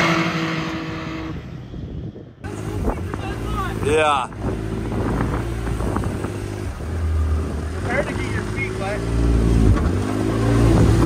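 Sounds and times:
engine running at low speed: 0.0s - 11.0s.

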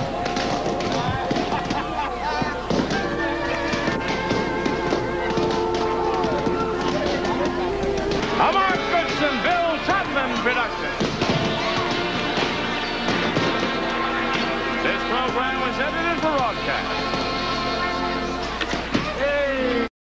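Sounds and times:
voices calling out: 0.0s - 19.9s
game show theme music: 2.6s - 18.9s.

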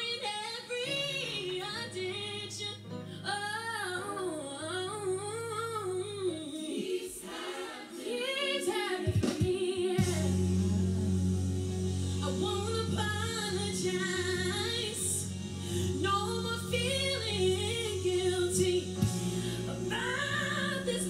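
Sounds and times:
woman singing gospel song: 0.0s - 10.8s, 12.2s - 21.0s
low accompaniment chords: 10.0s - 21.0s.

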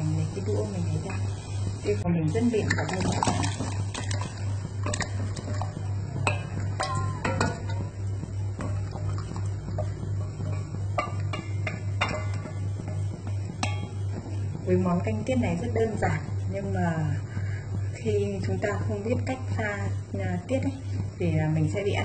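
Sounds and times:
boiling water: 0.0s - 22.0s
steady low hum: 0.0s - 22.0s.

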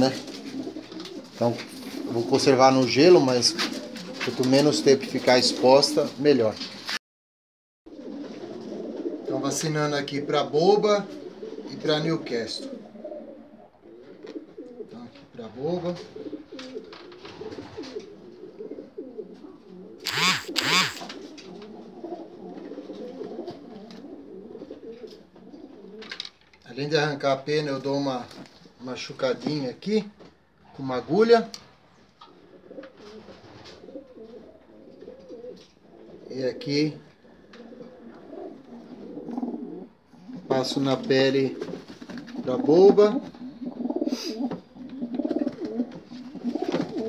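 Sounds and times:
pigeons cooing: 0.0s - 6.2s, 7.9s - 20.1s, 20.9s - 26.3s, 32.2s - 40.7s, 41.4s - 47.0s
loud short bursts of noise: 20.0s - 21.1s.

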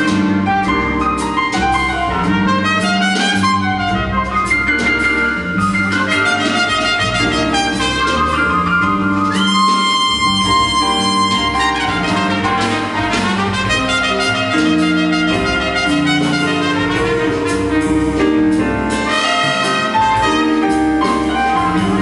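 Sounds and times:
double bass: 0.0s - 22.0s
drums: 0.0s - 22.0s
jazz trumpet solo: 0.0s - 22.0s.

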